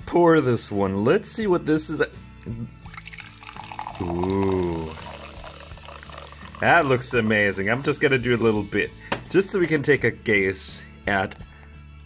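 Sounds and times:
cider pouring into glass: 2.7s - 7.6s
fizzing: 2.8s - 7.3s.

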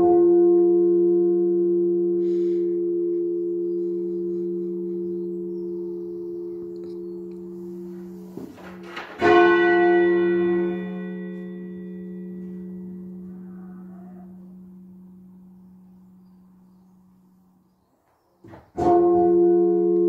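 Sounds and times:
church bell tolling: 0.0s - 17.7s, 18.7s - 20.0s.

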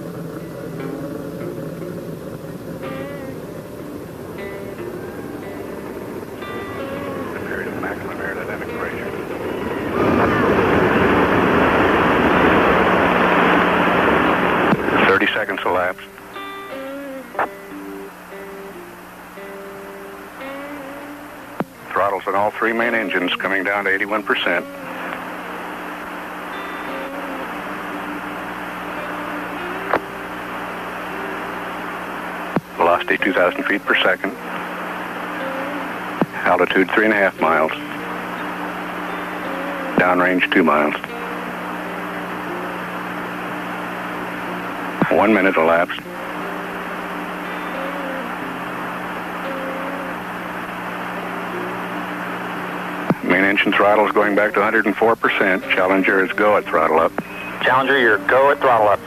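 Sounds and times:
slow held music notes: 0.0s - 15.0s, 15.6s - 59.0s
low hum: 0.0s - 59.0s
steady hiss: 0.0s - 59.0s.

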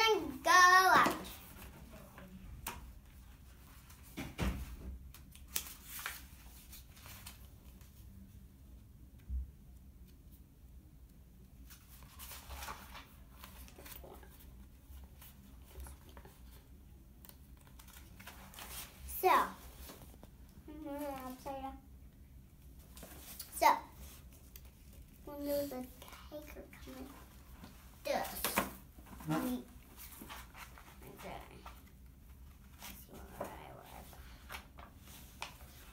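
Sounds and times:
book pages rustling: 5.1s - 8.2s, 11.6s - 21.7s, 22.6s - 35.9s.

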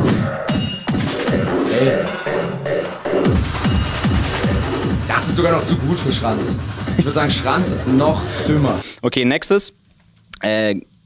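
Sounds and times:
distorted kick drum pounding: 0.0s - 8.8s
hard fast techno track: 0.0s - 8.8s.

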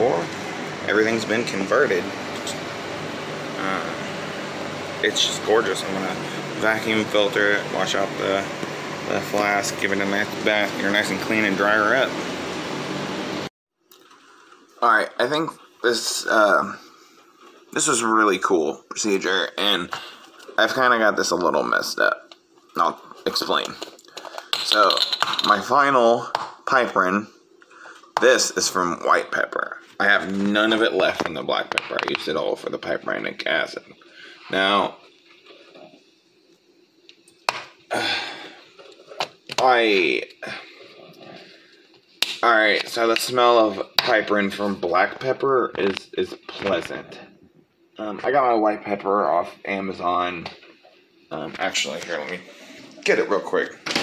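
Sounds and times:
machine humming: 0.0s - 13.5s.

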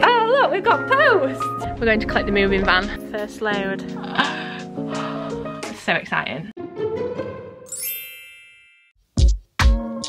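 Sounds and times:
bright chime ringing: 7.7s - 9.0s.

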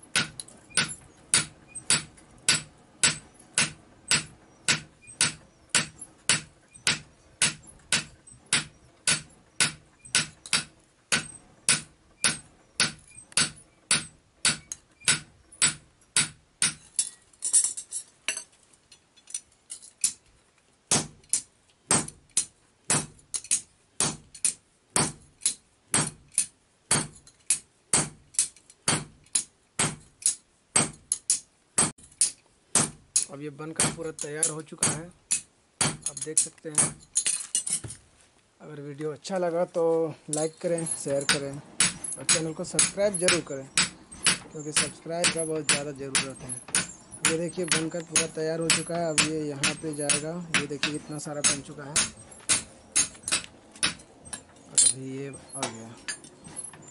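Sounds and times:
hammer striking steel on anvil: 0.1s - 17.1s, 20.9s - 37.0s, 40.3s - 56.9s.

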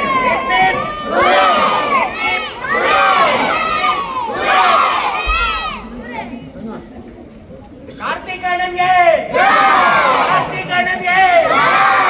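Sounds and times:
children shouting and cheering: 0.0s - 6.2s.

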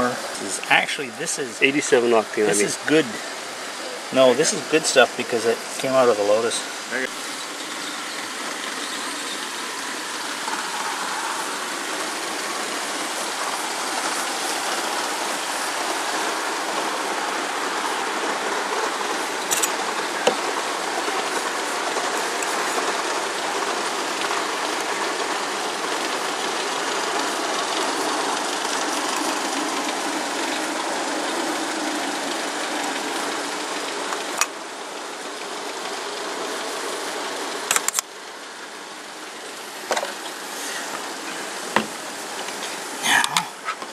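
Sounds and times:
sharp clicks: 37.7s - 38.1s.

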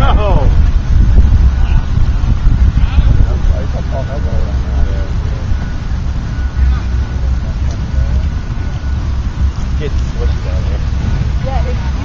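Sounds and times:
wind buffeting microphone: 0.0s - 12.0s
faint voices: 1.5s - 12.0s.

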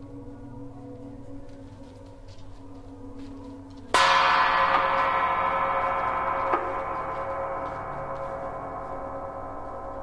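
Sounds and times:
quietly held tones: 0.0s - 10.0s.

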